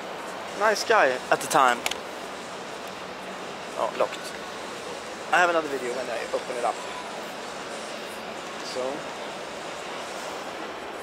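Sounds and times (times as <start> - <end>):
distant crowd chatter: 0.0 - 11.0.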